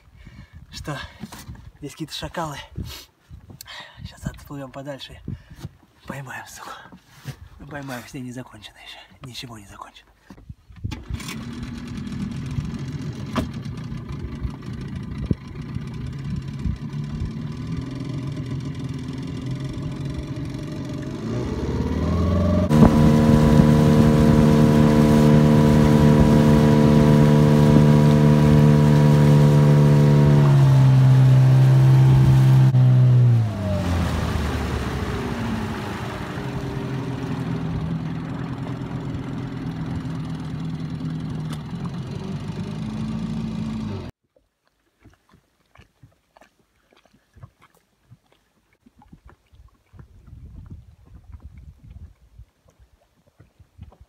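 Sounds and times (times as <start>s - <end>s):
outboard motor running: 11.0s - 44.1s.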